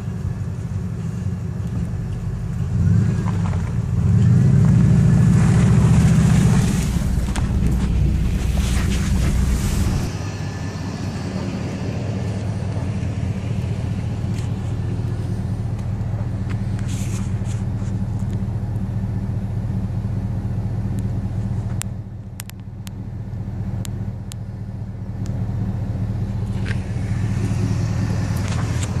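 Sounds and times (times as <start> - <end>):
car engine rumble inside cabin: 0.0 - 29.0.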